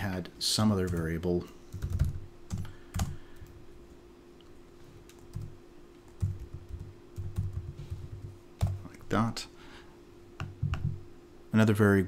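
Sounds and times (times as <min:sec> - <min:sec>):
faint steady hum: 0:00.0 - 0:12.0
typing on computer keyboard: 0:01.7 - 0:03.2, 0:06.1 - 0:08.8.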